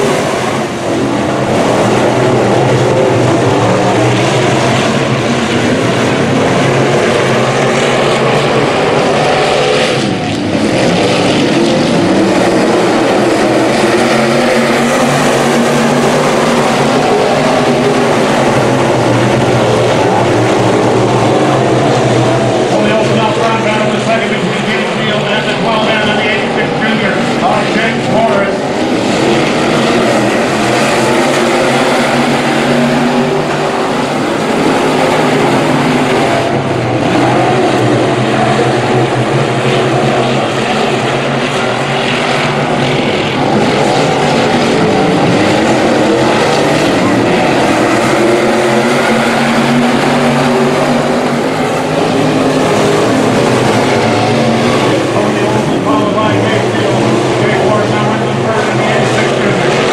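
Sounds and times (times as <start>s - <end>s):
race car engines droning: 0.0s - 59.9s.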